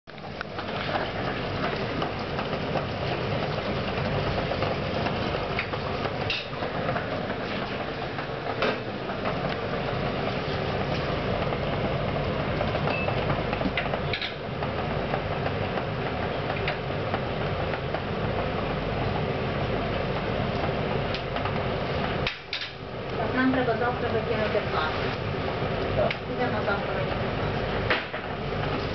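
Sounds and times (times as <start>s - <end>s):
water boiling and bubbling: 0.1s - 28.9s.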